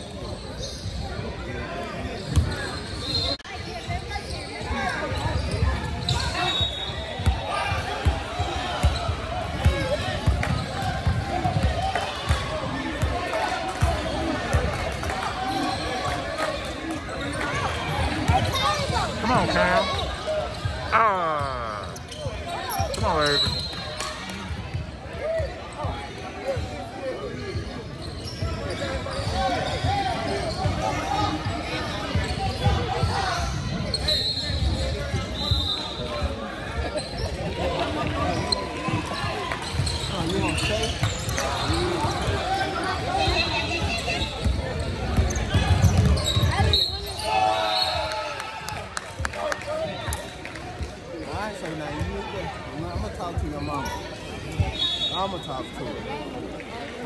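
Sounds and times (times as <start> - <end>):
players and spectators voices: 0.0 - 57.0.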